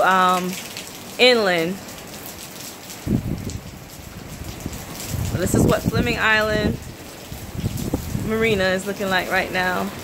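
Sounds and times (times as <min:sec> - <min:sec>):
rain hiss: 0:00.0 - 0:10.0
wind buffeting microphone: 0:02.9 - 0:10.0.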